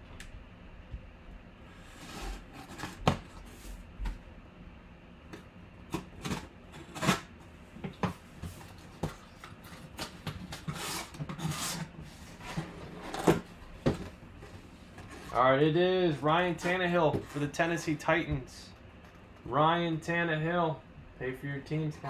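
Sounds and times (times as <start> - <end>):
cardboard scraping and rubbing: 1.8 - 3.8, 10.5 - 13.5.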